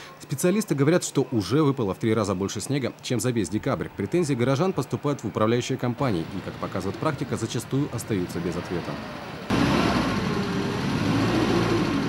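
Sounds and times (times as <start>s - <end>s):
car engine revving hard: 9.5s - 12.0s.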